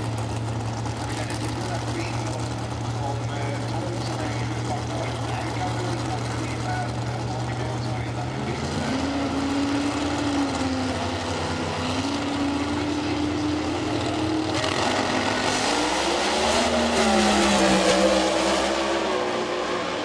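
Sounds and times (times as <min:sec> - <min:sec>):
race car engines idling roughly: 0:00.0 - 0:19.4
race car engine revving: 0:00.0 - 0:20.0.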